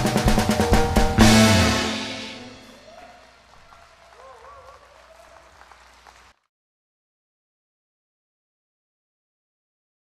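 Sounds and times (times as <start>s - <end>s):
band's last chord: 0.0s - 2.9s
audience applause: 1.2s - 6.5s
faint voice: 2.8s - 5.6s.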